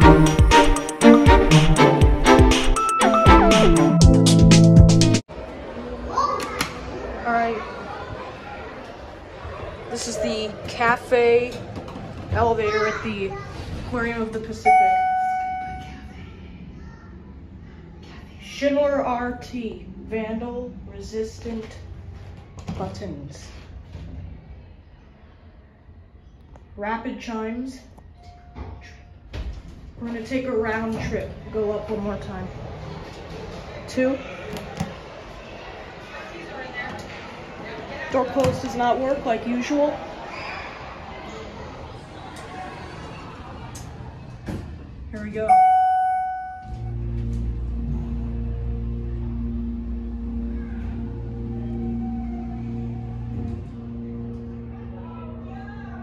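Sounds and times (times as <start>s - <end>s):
elevator chime: 14.6s - 16.1s, 45.5s - 47.1s.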